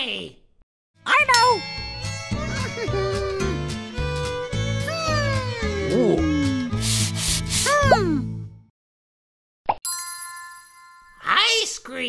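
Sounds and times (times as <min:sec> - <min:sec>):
bouncy music: 0:01.2 - 0:07.6.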